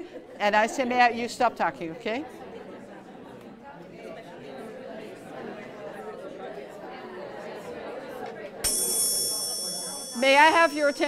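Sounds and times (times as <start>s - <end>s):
people chatting: 6.6s - 11.0s
chime wand ringing: 8.6s - 11.0s.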